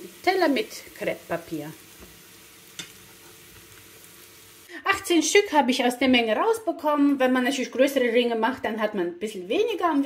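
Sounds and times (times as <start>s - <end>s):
woman speaking: 0.0s - 1.8s, 4.7s - 10.0s
oil sizzling in a pan: 0.0s - 5.2s.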